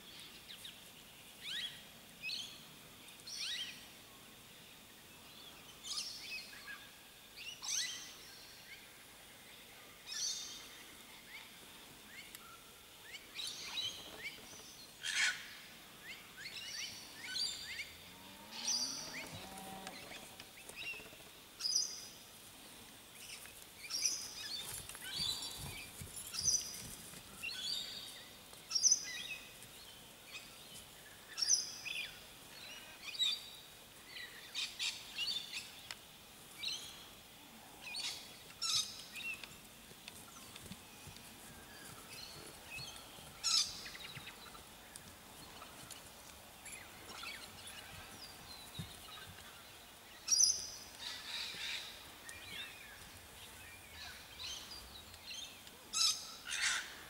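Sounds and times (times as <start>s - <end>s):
birds chirping and calling: 41.5s - 46.0s, 46.6s - 57.0s.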